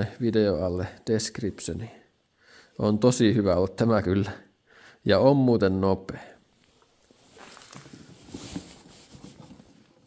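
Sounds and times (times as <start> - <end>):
faint rustling and clicks of handling: 6.5 - 10.0.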